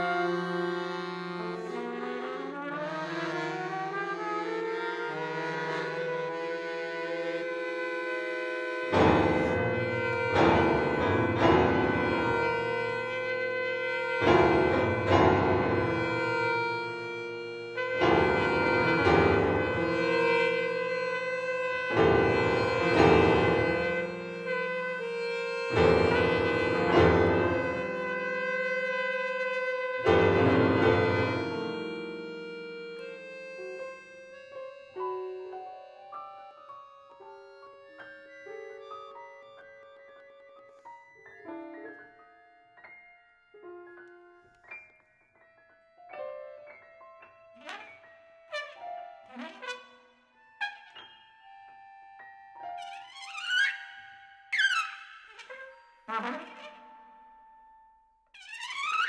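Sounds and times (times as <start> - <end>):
trumpet and accordion held tones: 0.0 - 38.8, 54.5 - 57.1
low piano clusters: 0.0 - 49.4.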